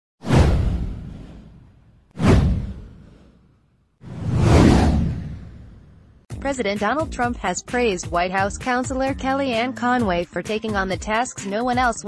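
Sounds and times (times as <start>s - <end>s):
whoosh with deep low rumble: 0.2s - 6.3s.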